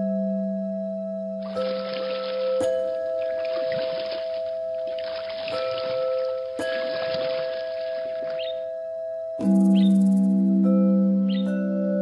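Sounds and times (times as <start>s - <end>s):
ambient music with held tones: 0.0s - 12.0s
flowing water: 1.4s - 8.6s.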